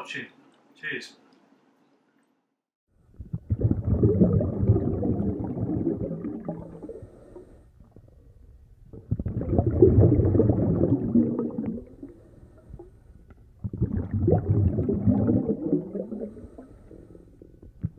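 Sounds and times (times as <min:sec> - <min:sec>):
underwater bubbling and gurgling: 0:03.1 - 0:17.9.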